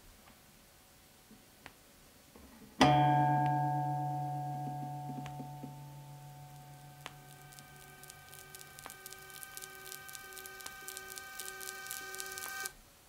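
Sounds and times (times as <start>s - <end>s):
vinyl crackle and clicks: 3.4s - 12.8s
pulsing low tone: 4.2s - 12.0s
held electronic tones: 4.9s - 12.8s.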